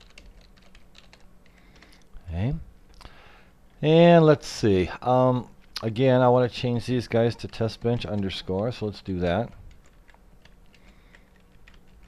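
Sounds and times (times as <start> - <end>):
keyboard typing: 0.0 - 2.1, 9.4 - 12.0.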